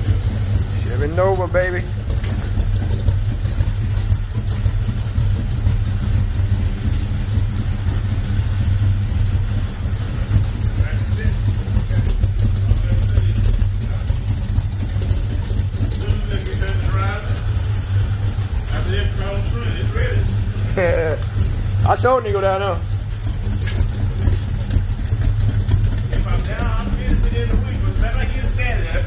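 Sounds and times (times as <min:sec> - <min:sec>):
car engine idling: 0:00.0 - 0:29.0.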